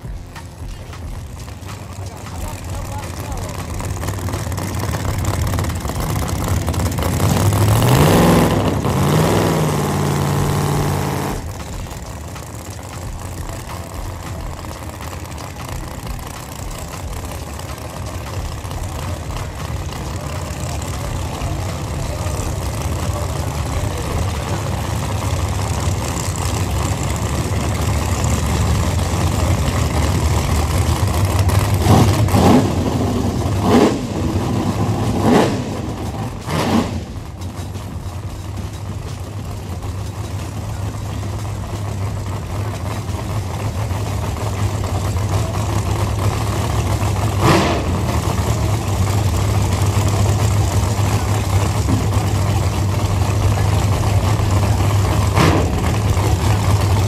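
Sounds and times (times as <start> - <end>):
engine throttle blips: 0.0 - 57.0
low engine rumble: 0.0 - 57.0
race car engine revving: 0.0 - 57.0.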